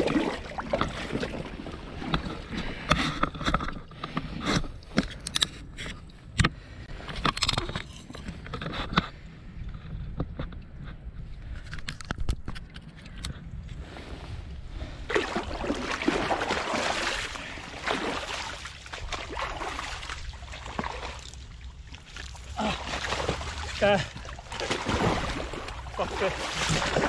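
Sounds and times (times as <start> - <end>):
water sloshing and splashing: 0.0 - 6.2, 12.0 - 27.0.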